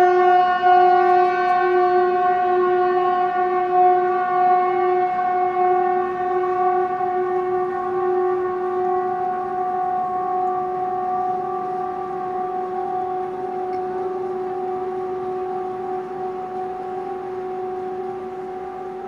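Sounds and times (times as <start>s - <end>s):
loud horn-like drone: 0.0s - 19.0s.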